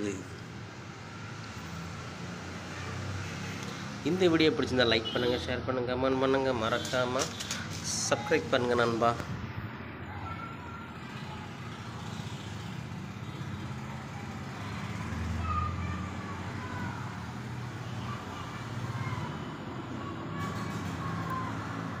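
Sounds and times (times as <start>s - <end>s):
traffic rumble: 0.0s - 22.0s.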